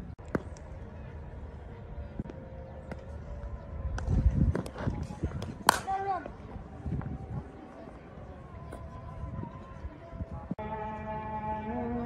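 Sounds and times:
cricket bat striking ball: 0:05.6 - 0:05.9.

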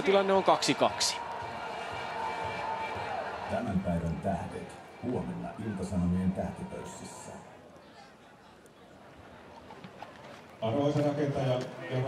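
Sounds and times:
stadium crowd: 0:00.0 - 0:12.0.

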